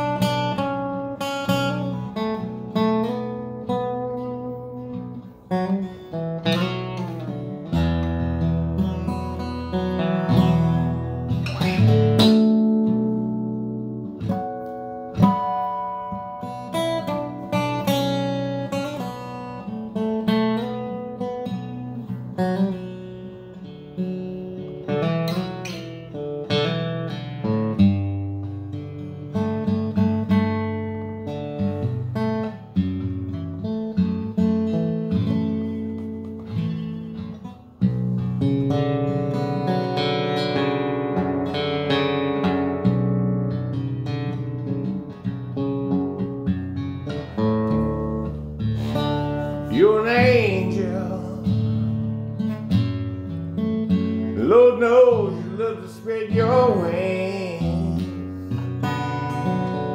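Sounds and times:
acoustic guitar playing: 0.0 - 59.9
man's voice: 49.7 - 51.6, 54.4 - 58.2.

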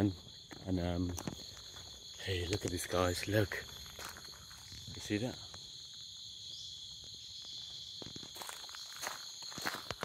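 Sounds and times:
crickets chirping: 0.0 - 10.0
footsteps on pavement: 0.1 - 2.9, 3.6 - 5.0, 7.0 - 10.0.

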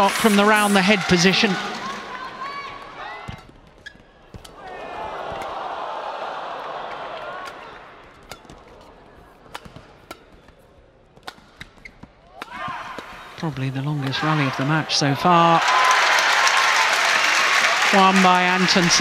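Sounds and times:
court shoes squeaking: 1.6 - 5.8, 6.7 - 14.4
racket hitting shuttlecock: 3.2 - 5.7, 6.9 - 13.3.

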